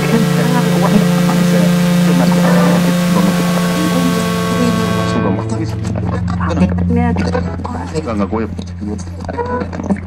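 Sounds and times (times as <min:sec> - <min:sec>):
sustained higher tones: 0:00.0 - 0:07.8
loud steady low hum: 0:00.0 - 0:09.8
faint indistinct voices: 0:00.0 - 0:10.0.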